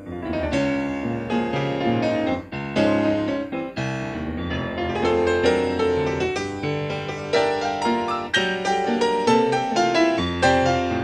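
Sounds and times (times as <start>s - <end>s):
grand piano chords and runs: 0.0s - 11.0s.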